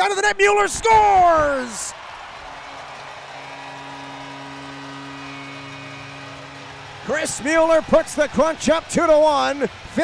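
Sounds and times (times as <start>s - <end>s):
crowd noise: 0.7s - 10.0s
goal horn chord: 2.6s - 9.8s.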